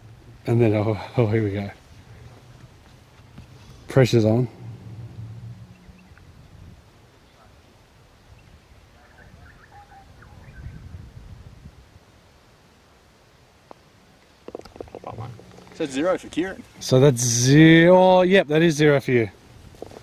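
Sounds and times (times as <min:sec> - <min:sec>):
wind rumble on microphone: 0:01.9 - 0:07.2, 0:08.2 - 0:12.0
putter striking golf ball: 0:14.4 - 0:16.2.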